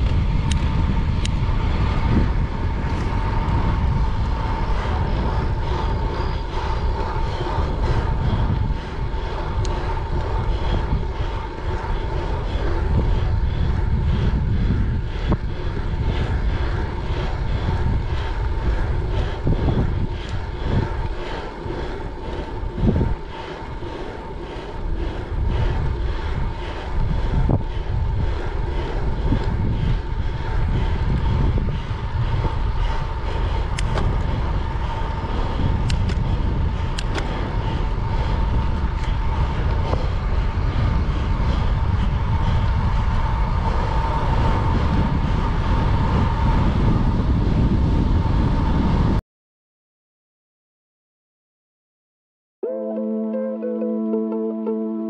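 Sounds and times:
bicycle tyre noise on road: 0.0s - 49.2s
wind rushing over microphone: 0.0s - 49.2s.

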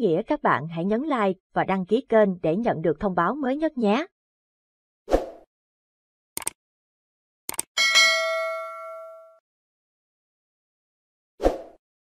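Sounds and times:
bright bell ding: 7.8s - 9.4s.

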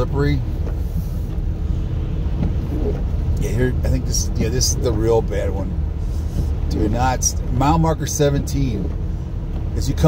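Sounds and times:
tyres on snowy road: 0.0s - 10.0s
vehicle engine rumble: 0.0s - 10.0s.

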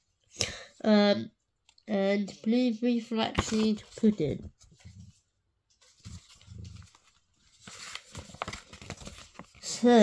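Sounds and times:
paper and packaging rustling: 3.2s - 10.0s
faint handling sounds: 3.3s - 9.8s.

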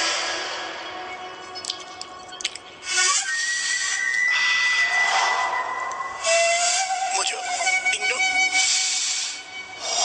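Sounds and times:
steady whistling tone: 2.9s - 10.0s
hiss: 6.2s - 7.0s, 8.6s - 10.0s.

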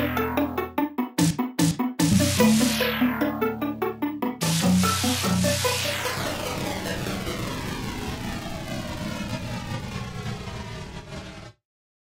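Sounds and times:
synthesized hissing whoosh: 4.4s - 7.4s.

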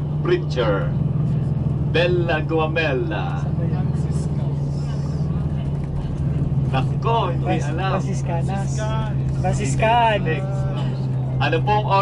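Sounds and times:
bus engine drone: 0.0s - 12.0s
road noise: 0.0s - 12.0s.

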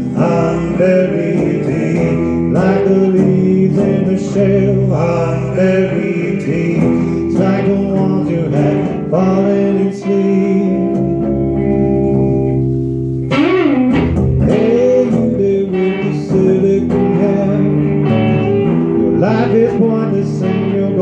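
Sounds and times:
lead guitar bending notes: 0.0s - 21.0s
rock band playing: 6.7s - 21.0s.

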